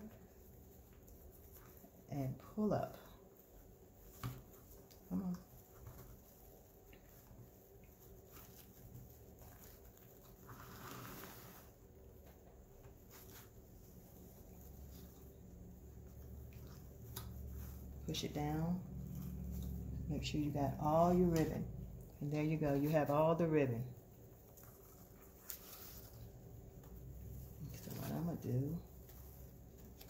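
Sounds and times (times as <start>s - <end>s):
fabric ribbon rustling: 0.0s - 30.0s.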